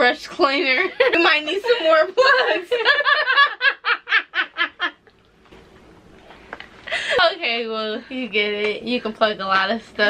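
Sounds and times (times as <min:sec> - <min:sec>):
young women laughing: 0:00.5 - 0:05.1.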